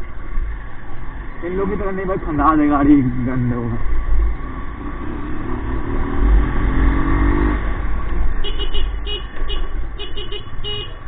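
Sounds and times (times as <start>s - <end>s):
motorcycle engine: 3.9s - 11.0s.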